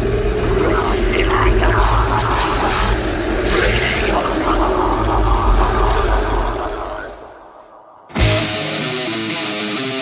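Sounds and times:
loud dense rumbling: 0:00.0 - 0:08.8.

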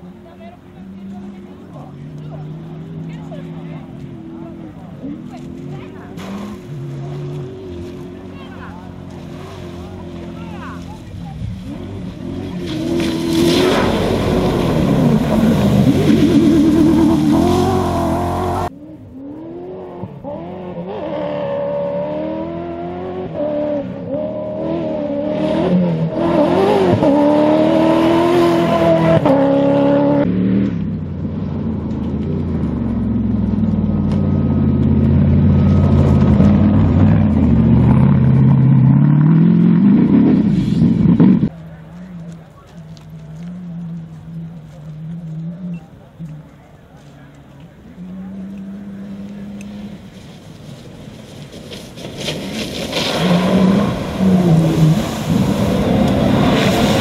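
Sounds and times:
rally cars accelerating on gravel: 0:00.0 - 0:57.0.

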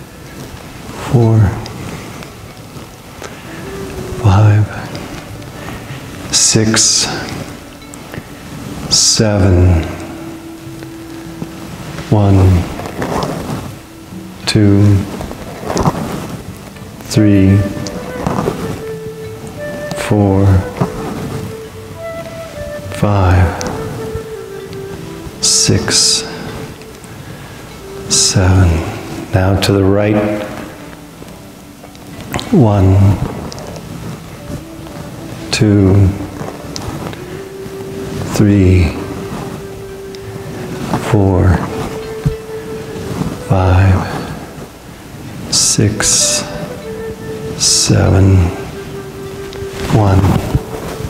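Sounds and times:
rain hissing: 0:00.0 - 0:51.0.

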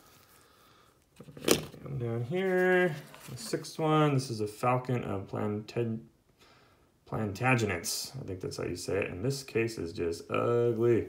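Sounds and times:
handling noise: 0:01.1 - 0:03.6.

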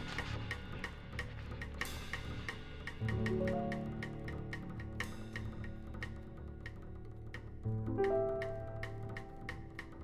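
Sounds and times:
ticking drum beat: 0:00.0 - 0:10.0.

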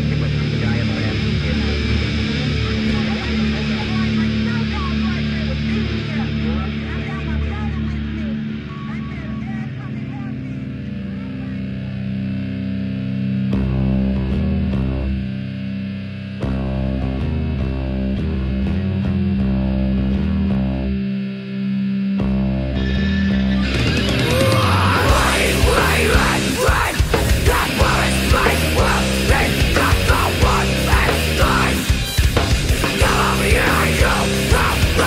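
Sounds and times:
distorted electric guitar chords: 0:00.0 - 0:35.0
drum and cymbal hits: 0:23.9 - 0:35.0.

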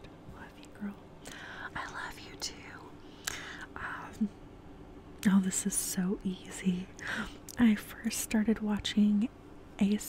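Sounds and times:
woman whispering: 0:00.3 - 0:03.0, 0:03.6 - 0:04.3, 0:05.3 - 0:09.2.

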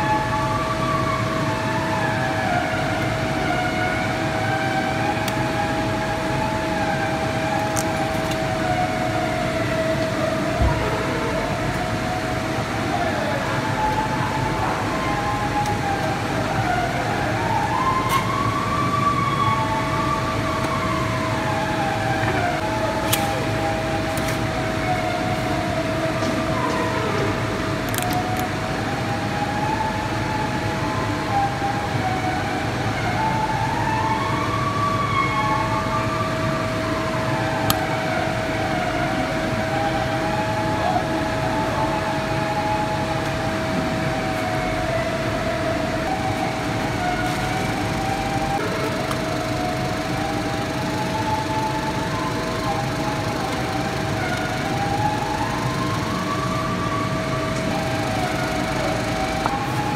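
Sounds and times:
steady machine whine: 0:00.0 - 0:59.9.

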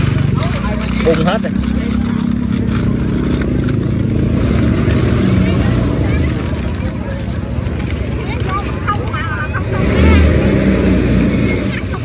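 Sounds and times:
crowd voices: 0:00.0 - 0:12.0
vehicle engine running: 0:00.0 - 0:12.0.

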